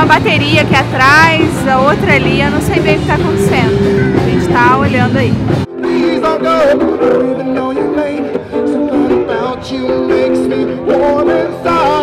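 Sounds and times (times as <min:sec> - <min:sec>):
person singing: 0:05.7 - 0:12.0.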